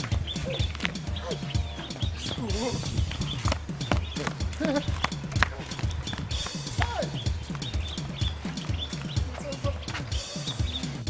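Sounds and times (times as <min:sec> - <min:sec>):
hand drum percussion: 0:00.0 - 0:11.0.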